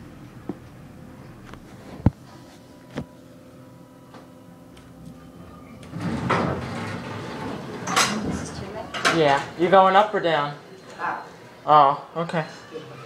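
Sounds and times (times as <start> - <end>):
elevator doors sliding open: 5.3 - 10.2.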